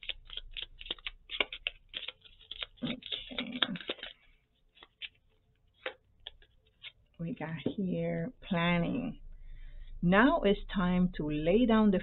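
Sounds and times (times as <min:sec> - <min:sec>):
cards being shuffled: 0:00.0 - 0:07.2.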